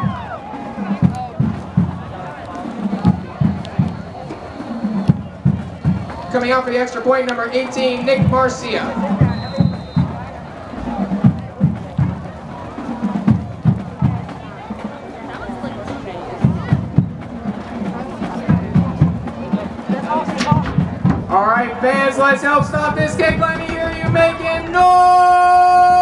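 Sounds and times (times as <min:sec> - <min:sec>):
drums playing a cadence: 0:00.0 - 0:07.4, 0:08.0 - 0:26.0
bass drum strokes: 0:15.9 - 0:26.0.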